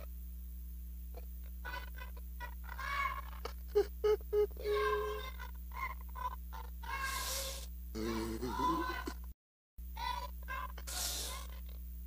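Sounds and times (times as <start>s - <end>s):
low electrical hum: 0.0s - 12.0s
hiss: 7.0s - 7.7s, 10.9s - 11.5s
amplified voice over pa: 8.0s - 9.0s.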